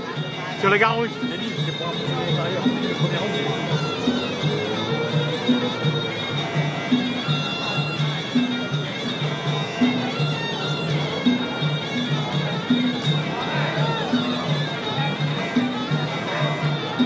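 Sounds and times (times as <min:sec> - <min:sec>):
drums beating: 0:00.0 - 0:17.0
shrill wavering oboe melody: 0:00.0 - 0:17.0.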